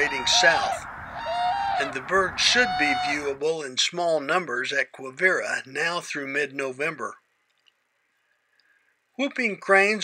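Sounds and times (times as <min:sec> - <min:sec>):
very faint ticks: 0:07.5 - 0:08.8.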